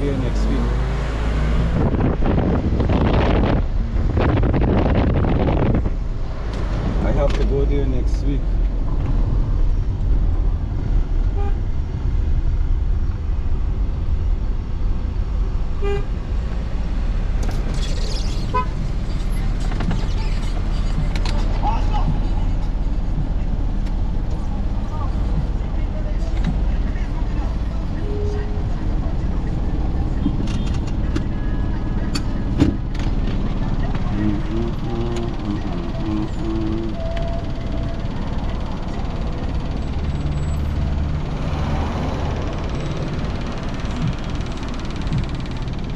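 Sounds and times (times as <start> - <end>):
car engine and road rumble: 0.0 - 45.9.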